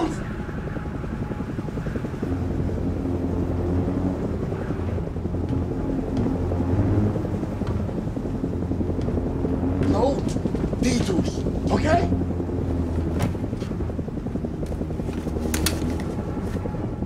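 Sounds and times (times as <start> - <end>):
helicopter rotor and engine: 0.0 - 17.0
music playing low: 0.0 - 17.0.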